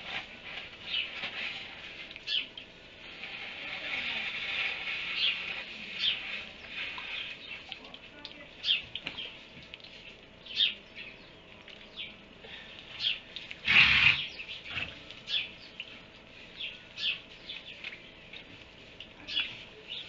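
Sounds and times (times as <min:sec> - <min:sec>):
small birds chirping: 0:02.2 - 0:02.6, 0:05.1 - 0:13.4, 0:14.1 - 0:20.0.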